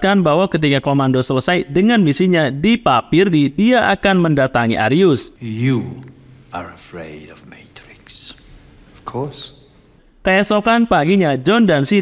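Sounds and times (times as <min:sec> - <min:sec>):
man speaking quietly: 0:05.4 - 0:09.6.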